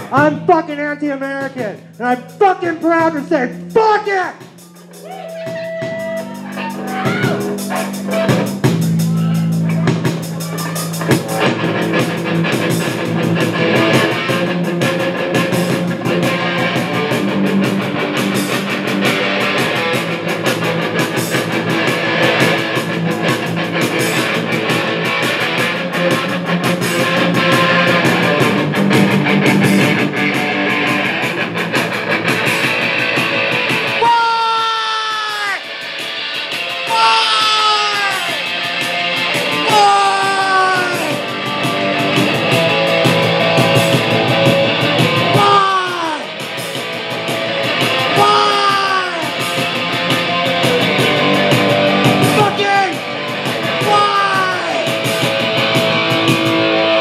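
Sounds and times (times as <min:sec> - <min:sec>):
distorted electric guitar: 0:00.0 - 0:57.0
drums: 0:00.0 - 0:57.0
falling wails: 0:04.6 - 0:09.9, 0:33.9 - 0:35.6, 0:36.8 - 0:38.5, 0:39.5 - 0:41.3, 0:45.2 - 0:46.3, 0:48.0 - 0:49.4, 0:53.8 - 0:54.9.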